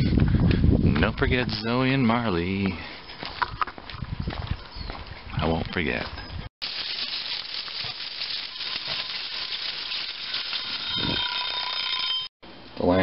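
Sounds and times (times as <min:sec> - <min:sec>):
meat sizzling under broiler: 0:06.6 - 0:11.9
electronic alarm tone: 0:10.7 - 0:12.3.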